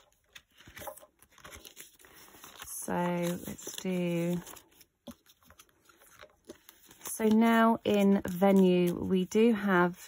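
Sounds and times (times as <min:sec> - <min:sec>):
banknotes rustling and clicking: 0:00.0 - 0:10.0.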